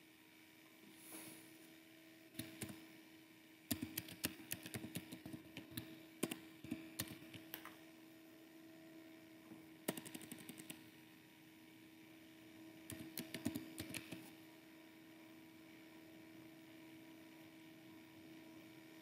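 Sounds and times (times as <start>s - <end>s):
faint electrical hum: 0.0s - 19.0s
keyboard typing: 2.4s - 2.8s, 3.7s - 7.7s, 9.9s - 10.8s, 12.9s - 14.3s.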